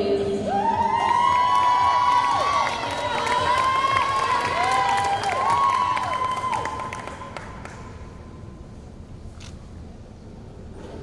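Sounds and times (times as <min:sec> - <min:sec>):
scattered clapping: 0:01.4 - 0:08.0.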